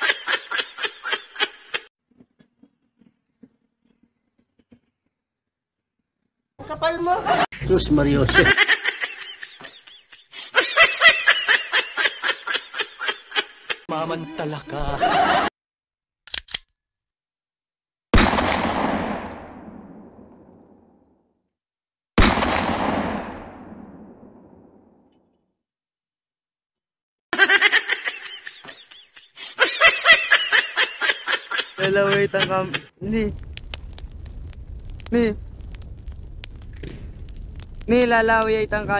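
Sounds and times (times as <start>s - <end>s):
snickering laughter: 8.4s - 13.9s, 27.4s - 32.9s.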